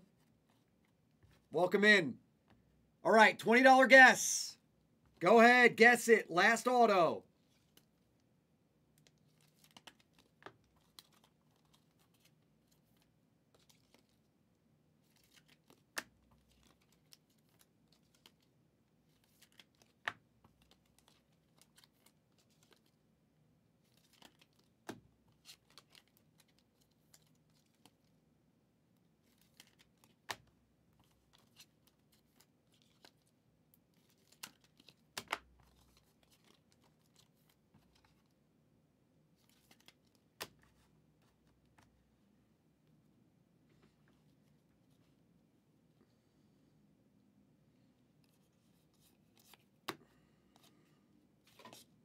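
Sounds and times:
trading cards clicking and snapping: 24.0 - 28.0, 34.0 - 37.3.

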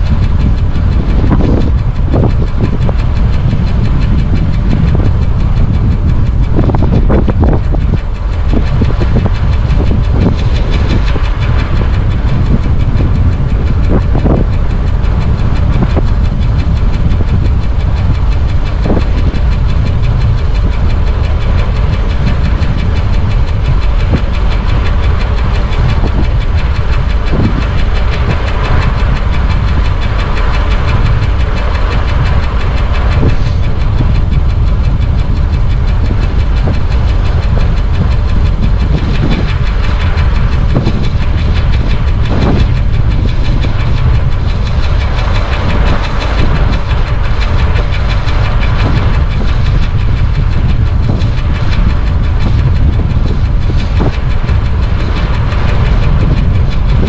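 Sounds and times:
wind rumble on microphone: 0.0 - 57.0.

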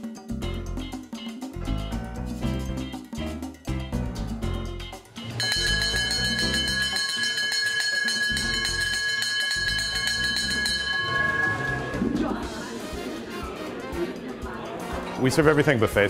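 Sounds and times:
upbeat merengue music: 0.0 - 16.0
hand bell ringing rapidly: 5.3 - 12.1.

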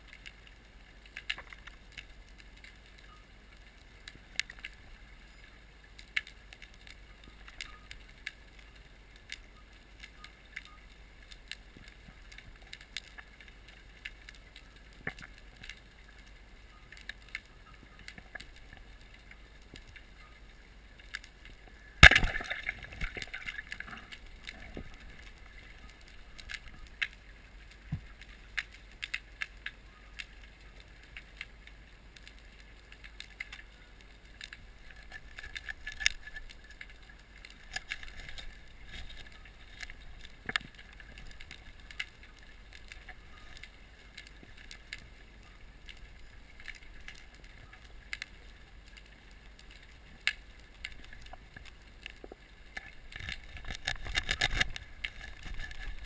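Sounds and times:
faint underwater clicks: 0.0 - 56.0.

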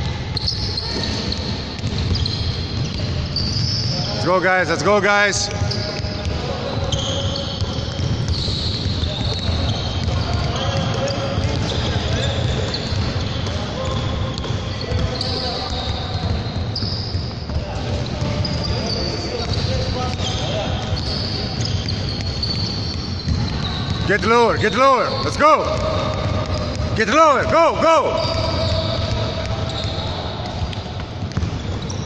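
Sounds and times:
basketballs bouncing on wooden floor: 0.0 - 4.1, 5.4 - 32.0
players' voices: 2.8 - 22.6, 23.4 - 31.8.

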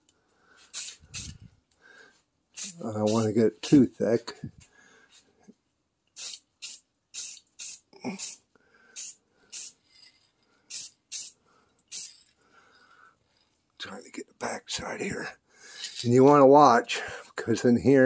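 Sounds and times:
aerosol spray can hissing: 0.7 - 1.4, 2.6 - 3.4, 6.2 - 8.4, 9.0 - 9.8, 10.7 - 12.2.

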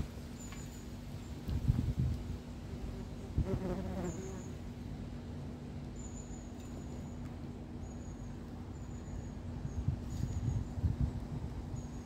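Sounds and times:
low rumble on microphone: 1.4 - 4.0, 9.5 - 12.0
insect buzzing: 2.7 - 4.6.

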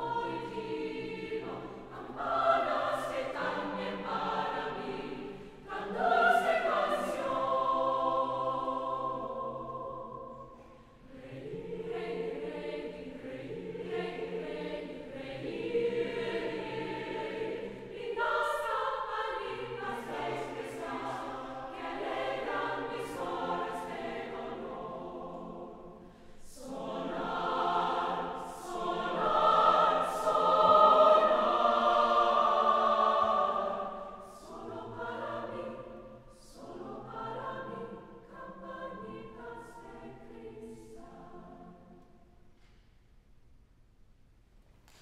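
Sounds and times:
mixed choir singing: 0.0 - 42.5.

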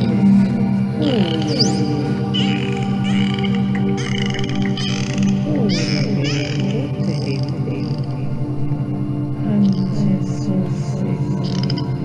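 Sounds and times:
low sustained drone: 0.0 - 12.0.

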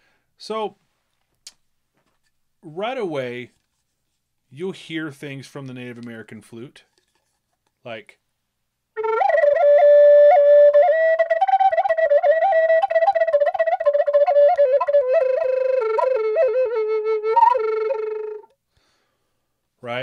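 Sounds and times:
flute melody with ornaments: 9.0 - 18.6.

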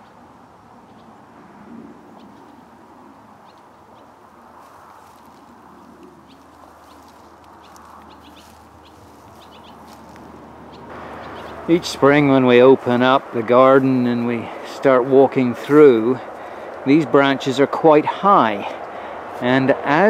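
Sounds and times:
highway traffic noise: 0.0 - 20.0
bird chirps: 6.2 - 9.9, 10.7 - 11.8.

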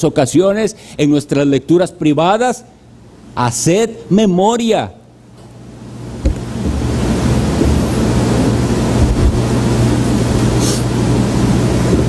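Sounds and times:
loud steady rushing noise: 6.2 - 12.0.

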